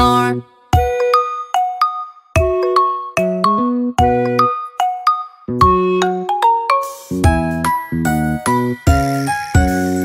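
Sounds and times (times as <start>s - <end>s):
instrumental children's song: 0.0s - 10.0s.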